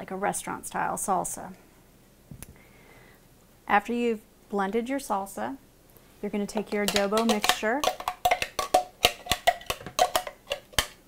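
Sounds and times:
metal spoon scraping plastic bowl: 0:06.7 - 0:11.0.

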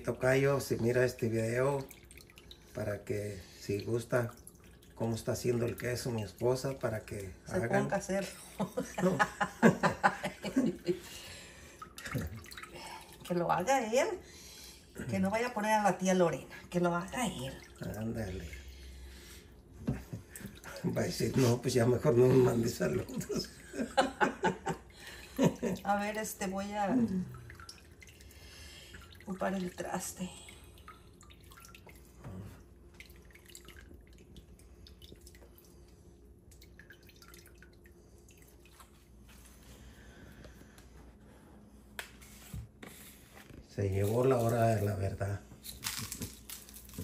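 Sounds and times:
liquid trickling and dripping into pot: 0:00.0 - 0:08.0, 0:11.5 - 0:14.0, 0:16.7 - 0:39.4.

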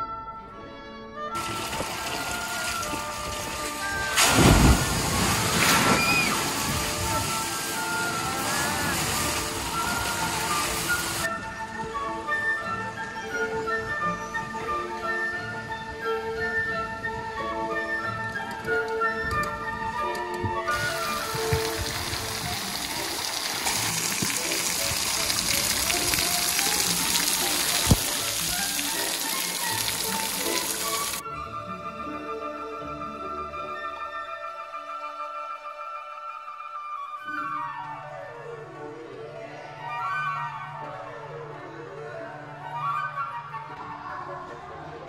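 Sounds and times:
light background music: 0:00.0 - 0:45.0
waterfall rushing into basin: 0:01.4 - 0:11.3, 0:20.7 - 0:31.2.

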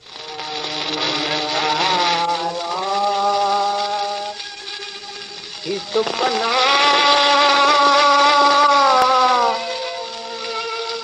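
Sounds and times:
gramophone record music: 0:00.0 - 0:11.0
record surface hiss: 0:00.0 - 0:11.0.

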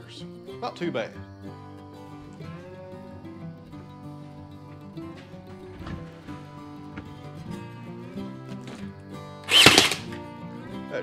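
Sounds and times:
background music: 0:00.0 - 0:11.0
nail gun firing: 0:09.5 - 0:10.2.

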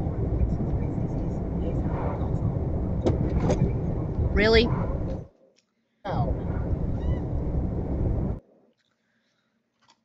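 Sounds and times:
lorry engine and tyres rumbling: 0:00.0 - 0:05.3, 0:06.1 - 0:08.4.

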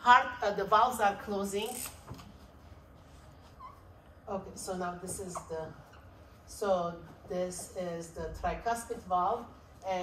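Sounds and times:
faint squeak: 0:03.4 - 0:04.0.

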